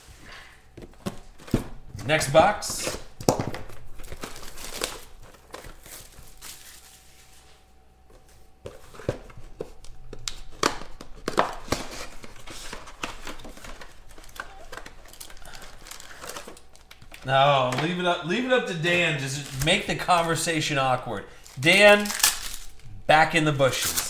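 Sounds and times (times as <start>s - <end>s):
cardboard rustling: 0.0s - 24.0s
plastic wrap crinkling: 0.0s - 24.0s.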